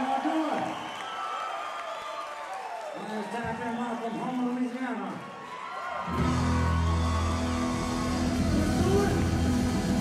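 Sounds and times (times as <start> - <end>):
blues-rock band playing: 6.1 - 10.0.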